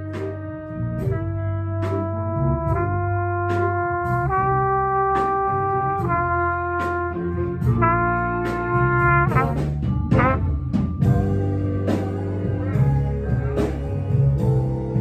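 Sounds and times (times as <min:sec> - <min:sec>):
jazz band playing a slow ballad: 0:00.0 - 0:15.0
low bass line: 0:00.0 - 0:15.0
trumpet: 0:00.0 - 0:15.0.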